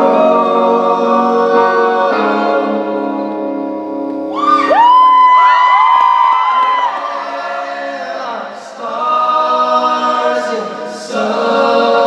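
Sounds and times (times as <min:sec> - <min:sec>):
men singing a cappella harmony: 0:00.0 - 0:03.5, 0:06.8 - 0:12.0
audience whooping and screaming: 0:04.3 - 0:07.6.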